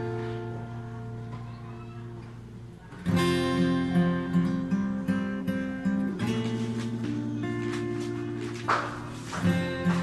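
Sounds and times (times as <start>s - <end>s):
acoustic guitar chord: 0.0s - 10.0s.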